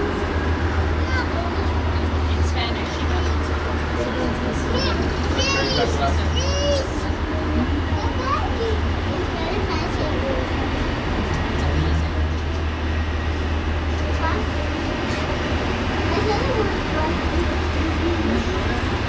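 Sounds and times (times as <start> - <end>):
cable car cabin hum: 0.0 - 19.0
passengers talking and calling: 0.0 - 19.0.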